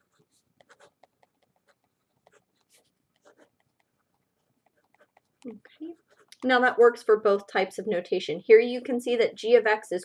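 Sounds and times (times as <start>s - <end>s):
pen scratching on paper: 0.0s - 6.8s.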